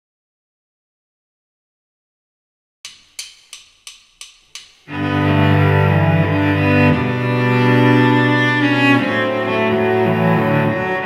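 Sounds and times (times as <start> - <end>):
metronome clicks: 2.9 - 5.0.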